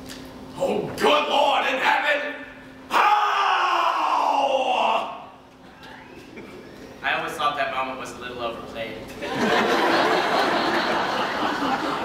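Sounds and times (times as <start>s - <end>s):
man's loud vocal cry: 2.9s - 5.4s.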